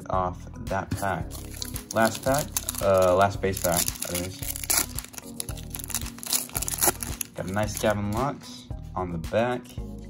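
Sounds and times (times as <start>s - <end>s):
background music: 0.0s - 10.0s
foil wrapper crinkling: 1.3s - 8.2s.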